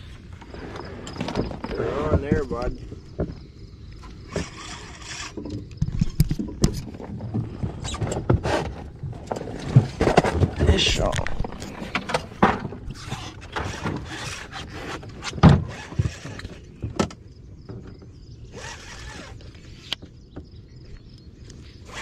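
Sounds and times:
knocks and clatter in metal boat: 0:01.0 - 0:03.4, 0:05.3 - 0:18.2.

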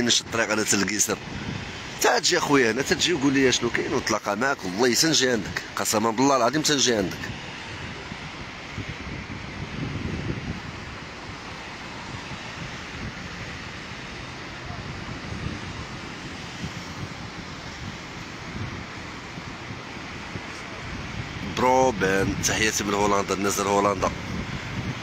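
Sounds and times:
surf breaking on beach: 0:00.0 - 0:25.0
wind across microphone: 0:00.0 - 0:25.0.

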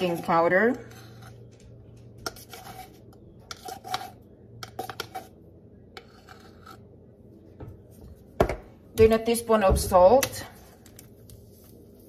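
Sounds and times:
spoon scraping powder: 0:00.0 - 0:01.5, 0:02.2 - 0:07.0.

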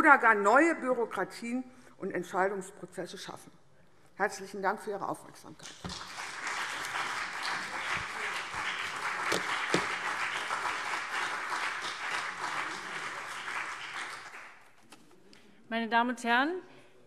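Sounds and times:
people clapping: 0:05.6 - 0:14.9.

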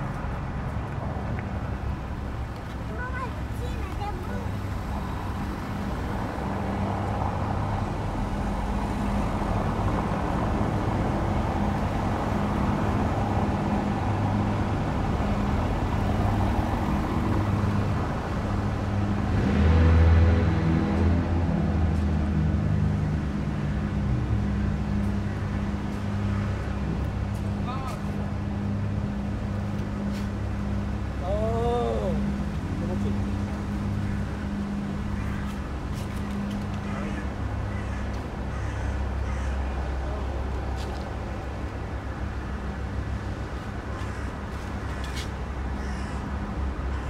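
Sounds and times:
road traffic: 0:00.0 - 0:47.0
vehicle passing: 0:00.0 - 0:47.0.

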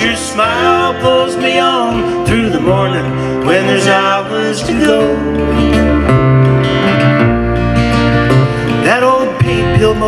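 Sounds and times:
strummed acoustic guitars: 0:00.0 - 0:10.0
upright bass: 0:00.0 - 0:10.0.

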